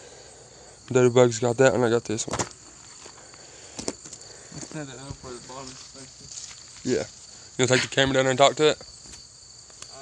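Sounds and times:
insects chirring: 0:00.0 - 0:10.0.

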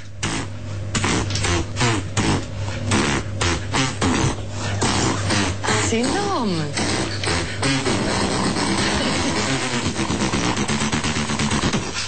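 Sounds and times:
person beatboxing: 0:00.2 - 0:12.0.

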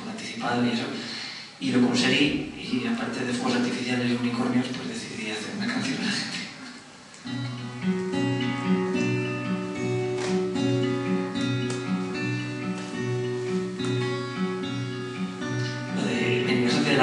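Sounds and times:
acoustic guitar playing: 0:07.2 - 0:17.0.

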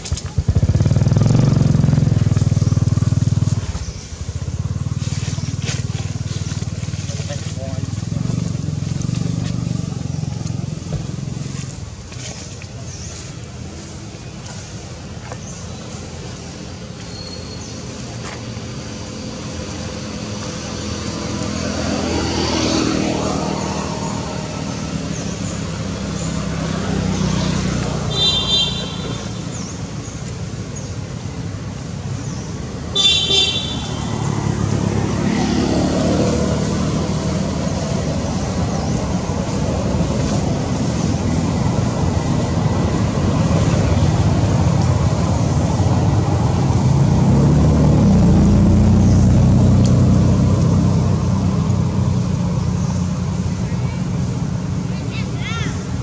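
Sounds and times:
traffic engine rumble: 0:00.0 - 0:56.0.

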